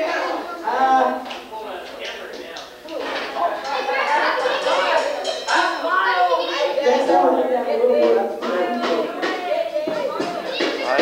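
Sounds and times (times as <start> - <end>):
students chattering: 0.0 - 11.0.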